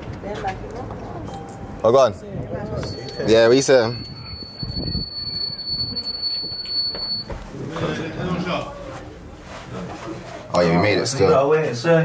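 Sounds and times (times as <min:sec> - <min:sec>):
door buzzer high-pitched tone: 0:02.8 - 0:07.4.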